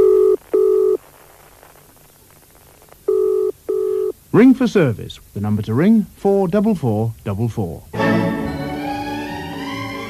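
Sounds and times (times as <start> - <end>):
telephone ringing tone: 0.0 - 1.0, 3.1 - 4.1.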